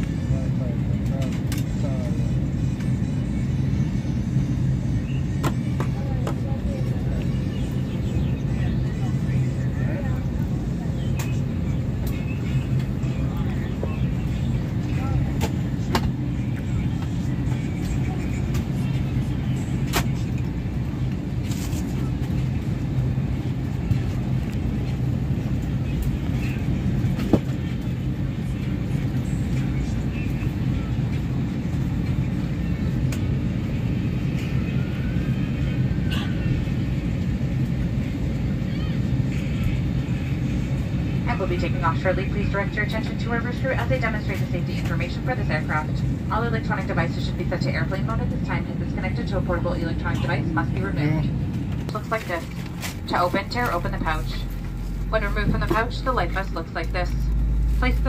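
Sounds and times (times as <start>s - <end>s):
jet airliner cabin drone: 0.0s - 58.0s.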